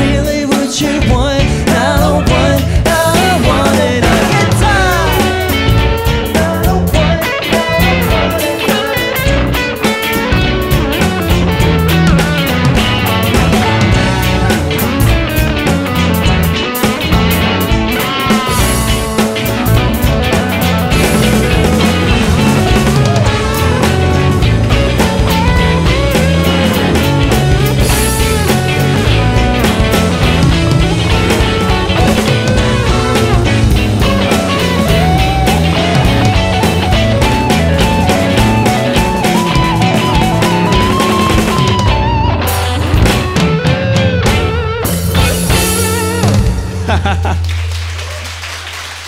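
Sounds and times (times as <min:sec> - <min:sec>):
rock band playing instrumental: 0:00.0 - 0:49.0.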